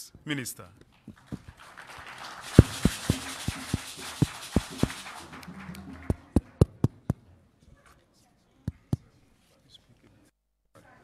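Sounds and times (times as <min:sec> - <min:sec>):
audience applauding: 0:01.0 - 0:07.0.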